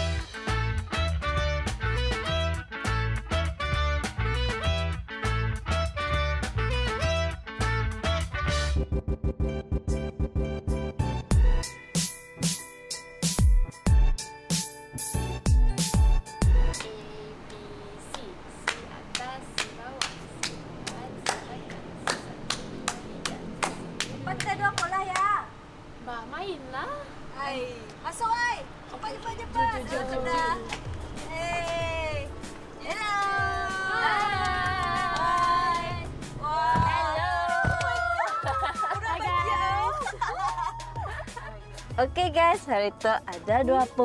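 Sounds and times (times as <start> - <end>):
background music: 0.0 - 17.5, 29.4 - 44.0
hand claps and slaps: 16.7 - 17.0, 18.1 - 25.3, 30.6 - 31.9, 34.2 - 35.8, 37.6 - 38.8
woman speaking in sing-song voice: 16.8 - 20.0, 42.0 - 44.0.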